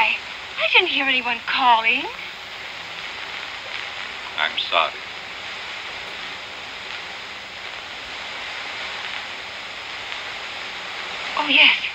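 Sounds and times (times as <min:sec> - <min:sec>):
film soundtrack hiss: 0:00.0 - 0:11.9.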